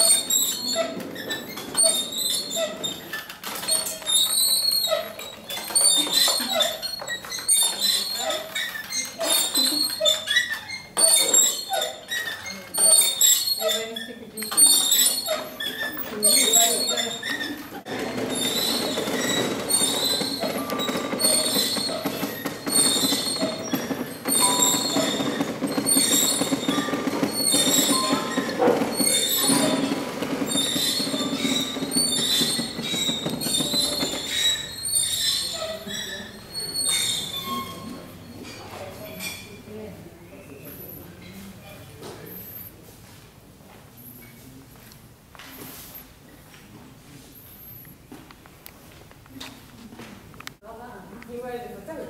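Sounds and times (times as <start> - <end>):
wooden gears squeaking and creaking: 0.0 - 39.8.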